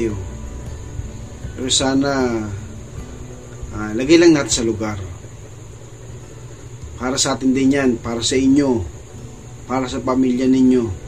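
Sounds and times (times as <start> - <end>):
faint hiss: 0.0 - 11.0
low background hum: 0.0 - 11.0.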